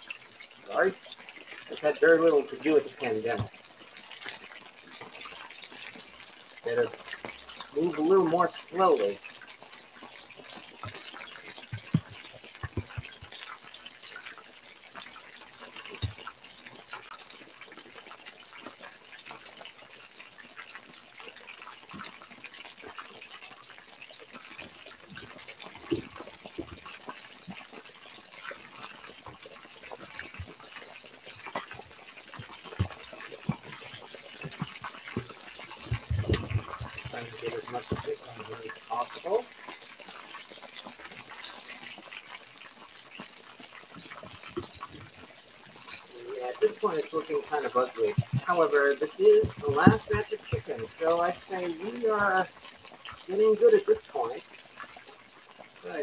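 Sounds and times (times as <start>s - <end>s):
chicken deep-frying in oil: 0.0s - 56.0s.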